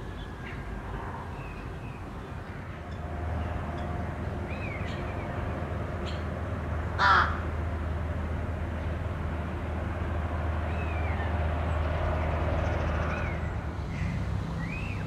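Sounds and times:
crow cawing: 0:07.0 - 0:07.4.

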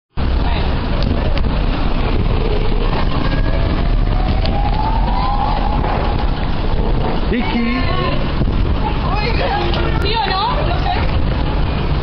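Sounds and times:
vehicle rumble: 0:00.1 - 0:12.0
indistinct voices: 0:00.4 - 0:11.2
slow rising wail: 0:02.6 - 0:08.3.

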